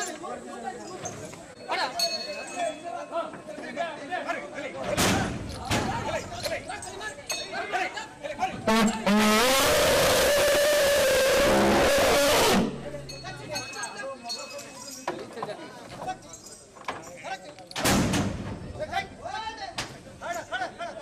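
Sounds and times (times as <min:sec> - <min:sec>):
people's voices: 0:00.0 - 0:21.0
elephant trumpeting: 0:08.7 - 0:13.0.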